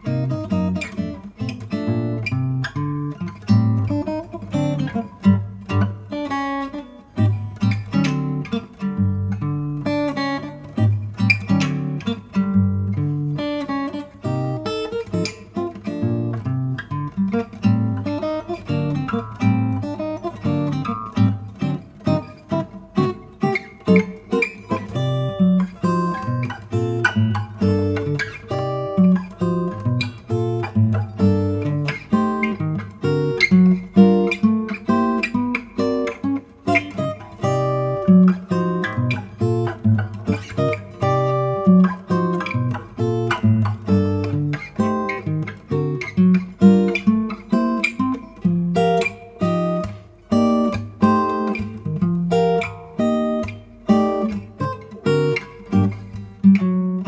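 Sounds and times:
fingerpicked acoustic guitar: 0:00.0 - 0:57.0.

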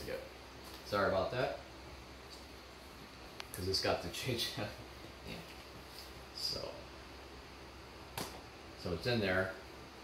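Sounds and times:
man speaking: 0:03.5 - 0:05.6, 0:06.3 - 0:06.9, 0:08.8 - 0:09.6.

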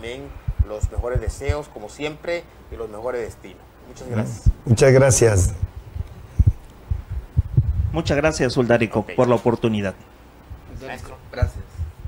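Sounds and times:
microphone handling thumps: 0:00.4 - 0:01.7, 0:04.2 - 0:08.2, 0:11.7 - 0:12.0.

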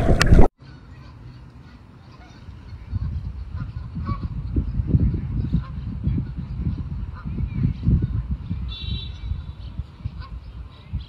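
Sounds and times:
geese honking: 0:00.6 - 0:11.0.

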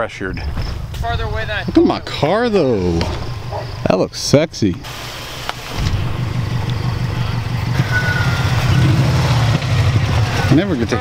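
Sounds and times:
car engine approaching: 0:01.4 - 0:11.0.

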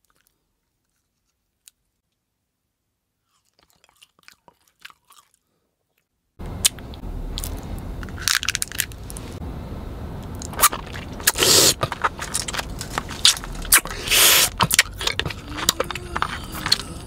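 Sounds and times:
bubble gum chewing crackles: 0:00.0 - 0:02.2, 0:03.2 - 0:09.3, 0:10.3 - 0:17.0
candy crunching in teeth: 0:03.3 - 0:06.0, 0:08.2 - 0:09.2, 0:10.4 - 0:17.0.

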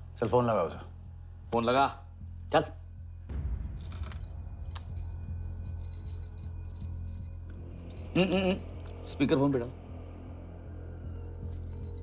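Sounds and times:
low film score drone: 0:00.0 - 0:12.0
metallic jingling: 0:03.7 - 0:12.0.

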